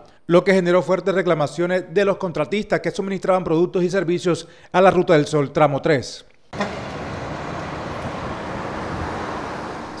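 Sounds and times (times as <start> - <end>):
road traffic rumble: 6.6 - 10.0.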